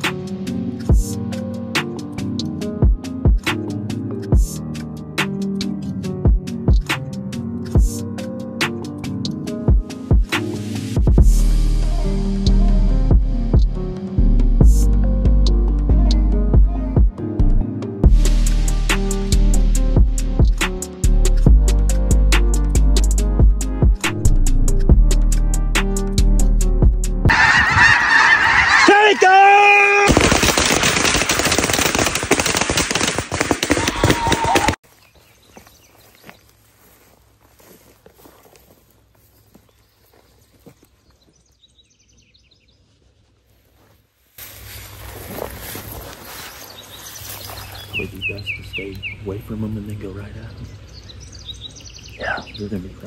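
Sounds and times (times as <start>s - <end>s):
geese calling: 27.3s - 30.1s
outdoor ambience: 27.3s - 53.0s.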